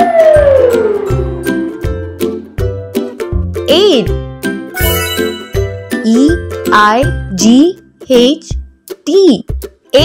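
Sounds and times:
cheerful children's music: 1.6s - 10.0s.

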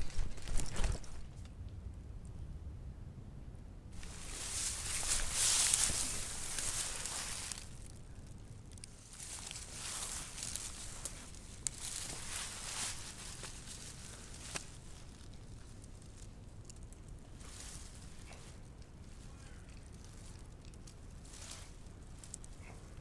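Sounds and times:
footsteps through dry undergrowth: 4.0s - 23.0s.

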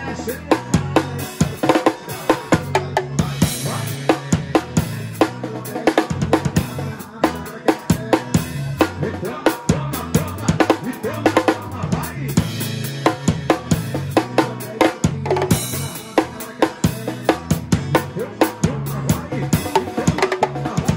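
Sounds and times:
bass line: 0.0s - 20.9s
drum kit groove: 0.0s - 20.9s.

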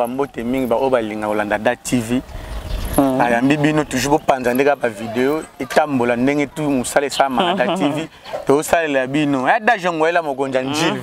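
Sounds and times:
man talking: 0.0s - 2.3s, 3.0s - 11.0s
passing motor vehicle rumble: 0.0s - 10.3s.

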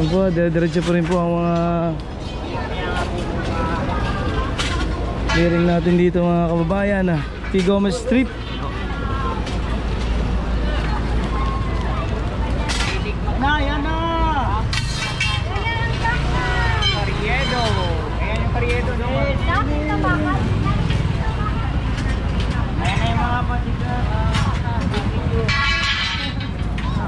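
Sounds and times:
crowd voices talking and calling: 0.0s - 27.0s
low rumble of traffic: 0.0s - 27.0s
metal stall frames clattering: 14.6s - 15.9s, 24.3s - 27.0s.

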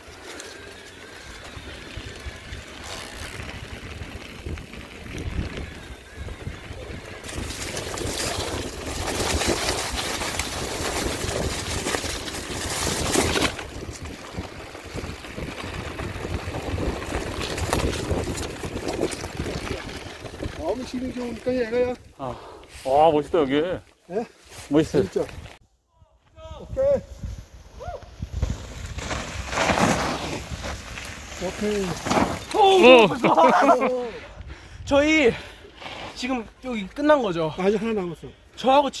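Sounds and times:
bike rattling: 0.0s - 22.2s, 27.3s - 34.1s
tyres rolling over dirt and leaves: 0.0s - 22.2s, 28.2s - 34.2s
wind rushing over microphone: 1.6s - 20.9s, 26.4s - 31.8s.

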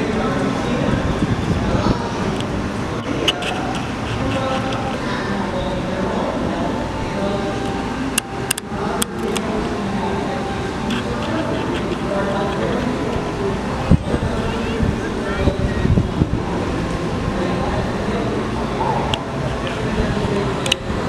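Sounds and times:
people chattering: 0.0s - 21.0s.

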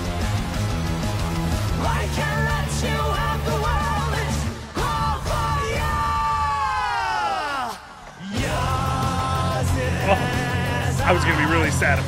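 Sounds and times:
heavy metal band playing: 8.3s - 12.0s.

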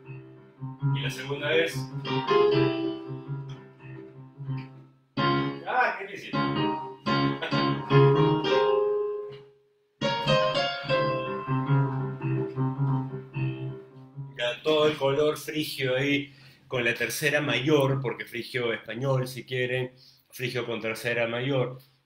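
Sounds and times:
bass line: 0.0s - 5.5s, 10.0s - 15.1s
piano melody: 0.0s - 15.6s.

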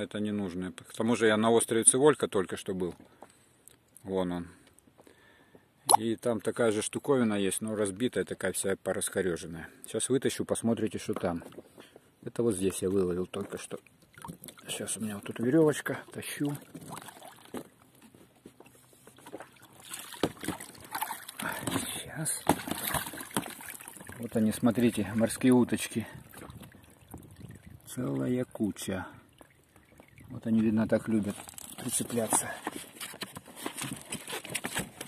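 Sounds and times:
water sloshing and splashing: 12.6s - 35.0s
knocks and scrapes on boat: 16.6s - 24.4s, 31.0s - 35.0s.

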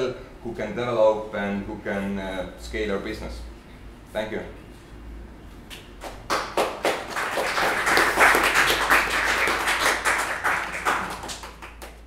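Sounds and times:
audience applauding: 6.1s - 12.0s.

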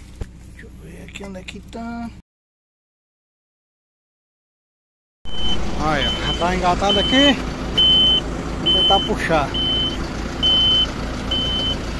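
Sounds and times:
tractor engine rumbling: 0.0s - 2.2s, 5.3s - 11.9s
short electronic beep: 5.3s - 11.8s
man talking: 5.7s - 7.4s, 8.6s - 9.6s.

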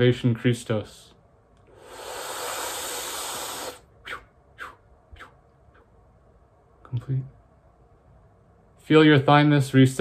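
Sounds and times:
man breathing deeply: 1.7s - 3.9s
faint mouth sounds: 1.7s - 6.0s.

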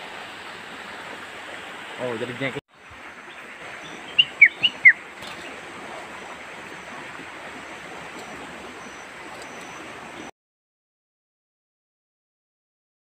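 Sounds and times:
bird chirps: 3.2s - 5.6s, 7.6s - 10.3s.

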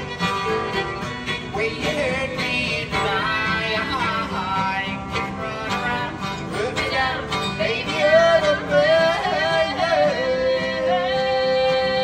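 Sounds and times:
acoustic guitar: 0.0s - 12.0s
fiddle: 0.0s - 12.0s
man and woman singing: 1.3s - 12.0s.

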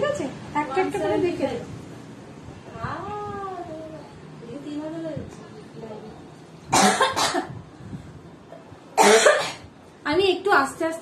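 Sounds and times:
loud cough: 6.7s - 7.5s, 9.0s - 9.7s.

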